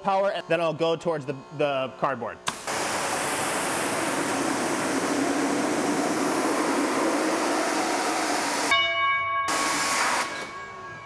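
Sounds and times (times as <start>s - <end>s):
pitched machine whine: 0.0s - 8.8s, 9.5s - 11.0s
pressure washer spray hissing: 2.5s - 8.7s, 9.5s - 10.3s.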